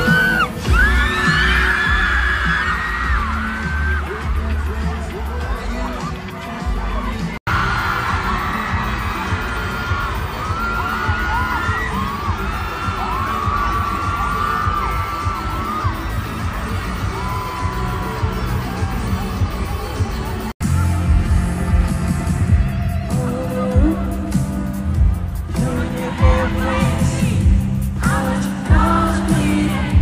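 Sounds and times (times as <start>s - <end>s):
arena crowd screaming and cheering: 0.0s - 30.0s.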